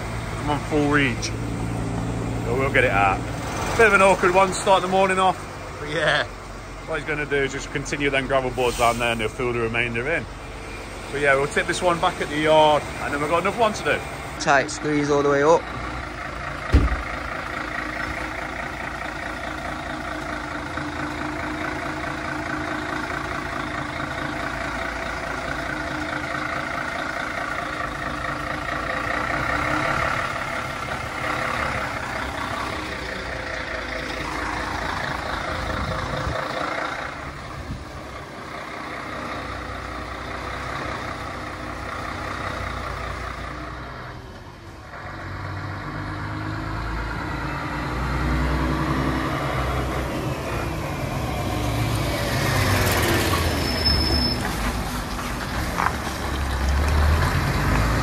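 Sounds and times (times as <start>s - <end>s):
lorry diesel engine running: 0.0s - 58.0s.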